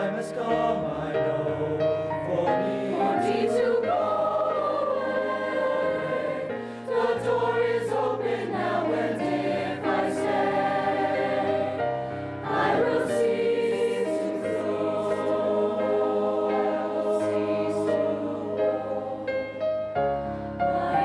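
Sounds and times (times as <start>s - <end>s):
choir singing held chords: 0.0s - 21.0s.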